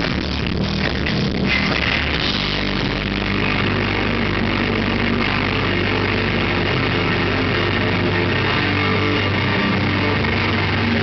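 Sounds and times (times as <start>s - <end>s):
distorted guitar: 0.0s - 11.0s.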